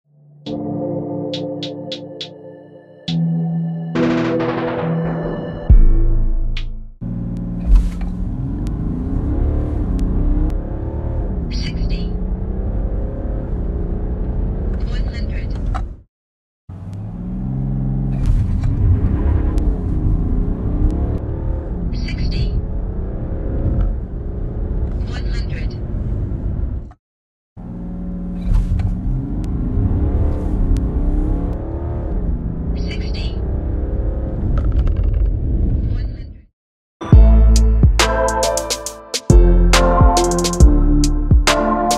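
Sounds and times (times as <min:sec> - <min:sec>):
car engine accelerating: 0:07.0 - 0:16.0, 0:16.7 - 0:25.4, 0:27.6 - 0:35.7
high chirps: 0:37.0 - 0:41.9.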